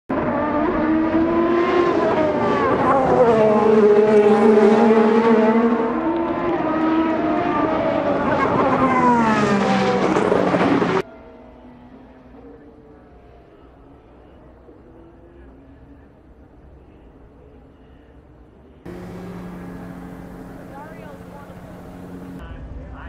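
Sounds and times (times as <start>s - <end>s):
racing cars passing at high revs: 0.1s - 11.0s, 18.9s - 22.4s.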